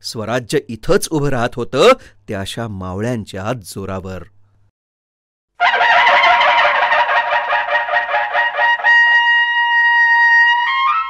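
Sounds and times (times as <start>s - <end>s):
steady held note: 5.6s - 10.6s.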